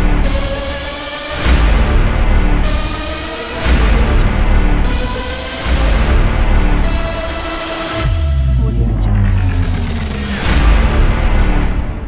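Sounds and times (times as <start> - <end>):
intro music with deep bass drone: 7.8 - 12.0.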